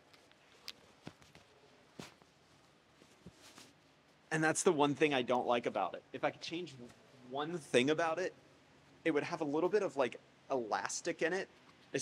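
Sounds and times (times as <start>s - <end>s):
fabric rustling: 0.0s - 4.3s.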